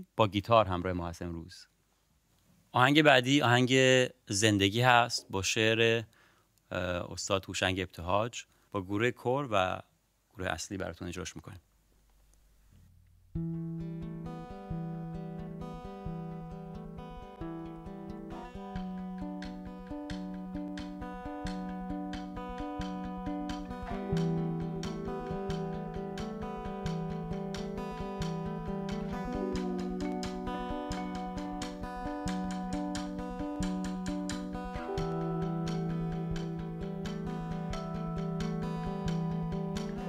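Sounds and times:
plucked guitar pattern: 13.3 - 40.0.

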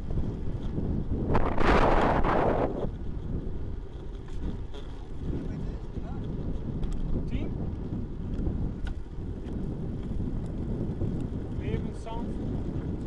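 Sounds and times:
tyres rumbling on rough asphalt: 0.0 - 13.0
wind buffeting microphone: 0.0 - 13.0.

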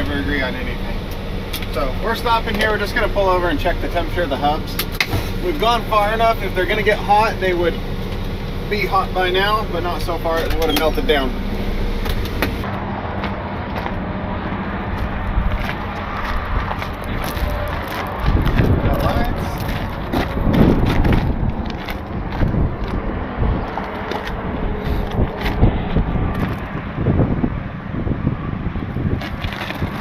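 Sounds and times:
low rumble: 0.0 - 30.0
truck engine humming: 0.0 - 30.0
handling and scraping sounds: 29.2 - 30.0.

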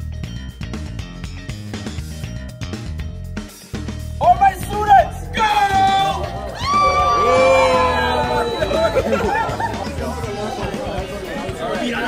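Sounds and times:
background music: 0.0 - 12.0
many people talking: 5.1 - 12.0.

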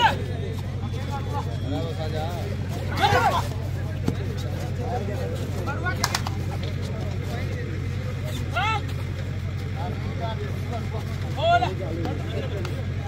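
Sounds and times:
people shouting short calls: 0.0 - 3.8, 8.1 - 9.1, 11.2 - 12.7
steady low hum: 0.0 - 13.0.

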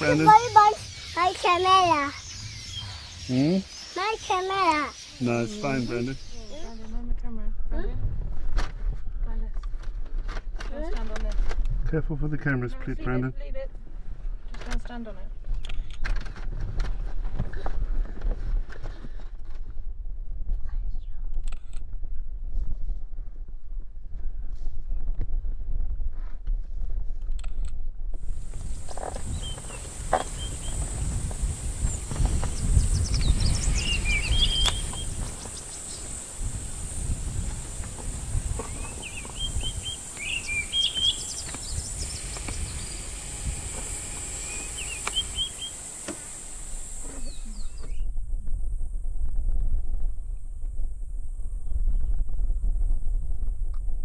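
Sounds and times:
bird chirps and twitters: 0.0 - 7.0, 28.6 - 36.2, 38.6 - 48.1
high-pitched drone: 2.1 - 6.8, 37.6 - 47.9
low rumble: 28.2 - 54.0.

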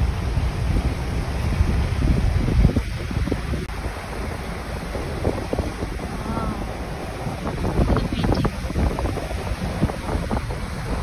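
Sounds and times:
water rushing over rocks: 0.0 - 11.0
wind buffeting microphone: 0.0 - 11.0.

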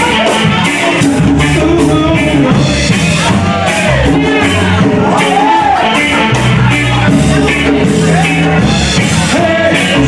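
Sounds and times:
bass: 0.0 - 10.0
drum kit: 0.0 - 10.0
electric guitars: 0.0 - 10.0.

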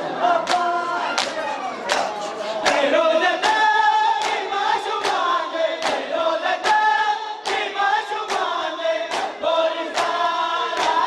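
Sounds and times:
group chanting a lament in unison: 0.0 - 11.0.

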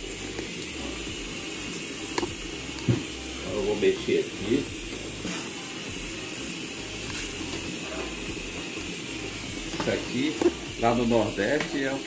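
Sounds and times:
pot cooking on gas burner: 0.0 - 12.0.

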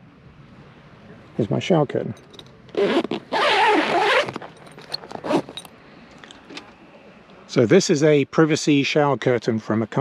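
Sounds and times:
zipper rasping open: 2.7 - 5.7.

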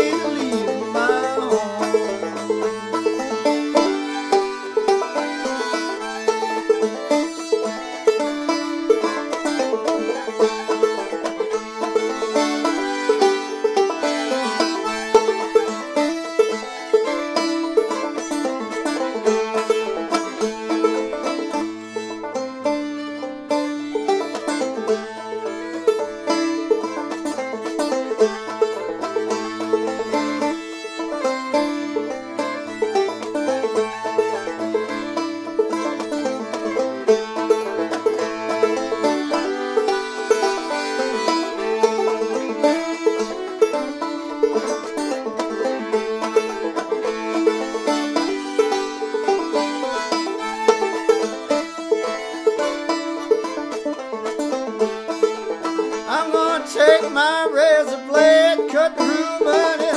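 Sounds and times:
fiddle: 0.0 - 59.9
picked banjo: 0.0 - 59.9
button accordion: 56.0 - 59.9.

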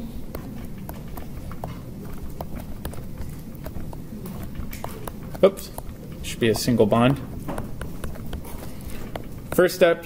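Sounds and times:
stylus tapping on tablet screen: 0.3 - 10.0.

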